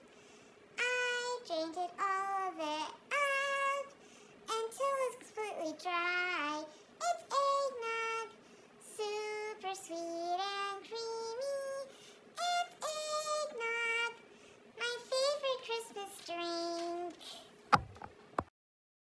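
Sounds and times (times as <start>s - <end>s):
woman singing in high voice: 0.8s - 14.2s, 14.8s - 17.5s.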